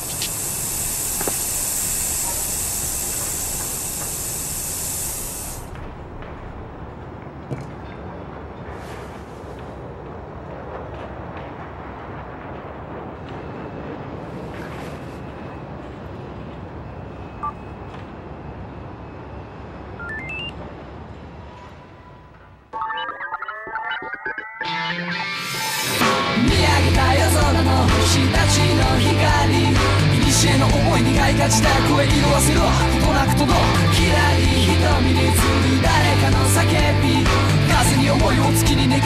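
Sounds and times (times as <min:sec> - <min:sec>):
high-pitched hiss: 0:00.0 - 0:05.7
steady background noise: 0:00.0 - 0:39.0
rising run of electronic beeps: 0:20.0 - 0:20.6, 0:22.7 - 0:26.0.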